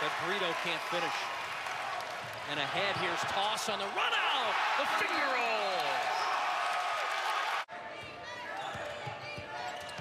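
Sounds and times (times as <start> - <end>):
loud arena crowd noise: 0.0 - 10.0.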